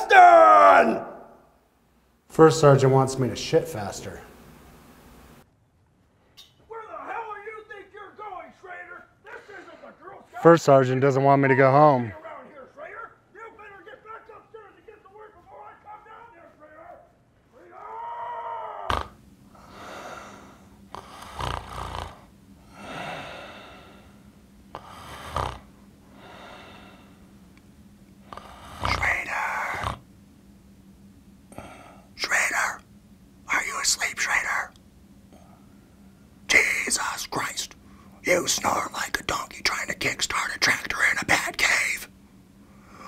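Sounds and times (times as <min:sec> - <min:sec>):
faint steady hum: 0:00.0 - 0:43.0
loud snort: 0:18.9 - 0:20.3, 0:20.9 - 0:23.9, 0:24.8 - 0:25.7, 0:28.3 - 0:30.0
man snoring: 0:18.9 - 0:27.2, 0:28.2 - 0:30.1
rasping breath: 0:18.9 - 0:27.3
man whispering: 0:28.8 - 0:30.0, 0:32.1 - 0:32.9, 0:33.5 - 0:34.8, 0:36.5 - 0:42.1.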